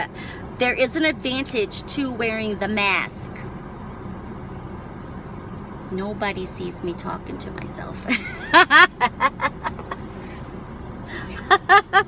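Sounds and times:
car cabin rumble: 0.0 - 12.0
woman laughing: 8.1 - 10.0, 11.1 - 12.0.

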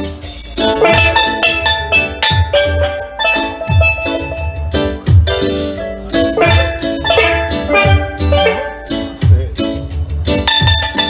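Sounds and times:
steady drum beat: 0.0 - 11.0
steelpan melody: 0.0 - 11.0.

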